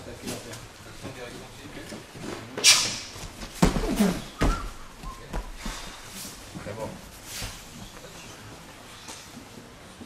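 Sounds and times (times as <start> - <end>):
knocks and shuffles on mat: 0.2 - 10.0
body thudding onto mats: 3.2 - 5.8.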